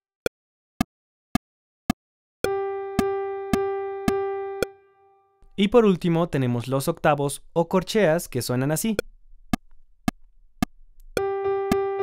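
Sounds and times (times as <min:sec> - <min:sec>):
metronome clicks: 0:02.4 - 0:04.7, 0:11.0 - 0:11.9.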